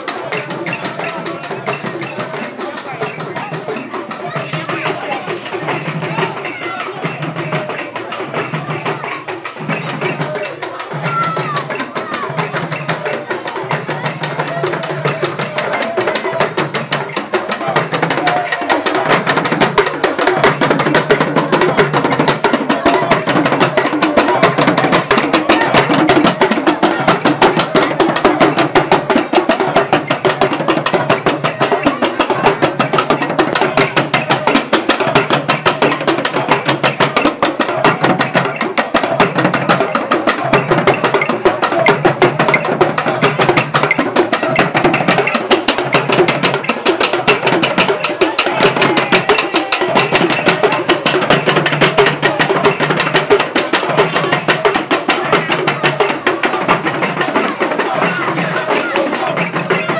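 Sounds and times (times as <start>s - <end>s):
hand drum: 0.0s - 59.9s.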